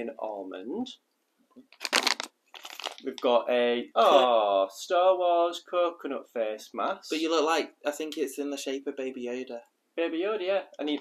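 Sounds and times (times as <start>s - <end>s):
plastic sachets crinkling: 1.7s - 3.3s.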